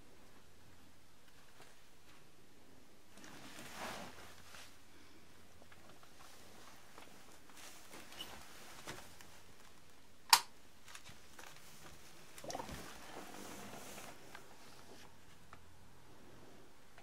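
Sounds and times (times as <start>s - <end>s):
airlock gurgling: 12.4s - 13.7s.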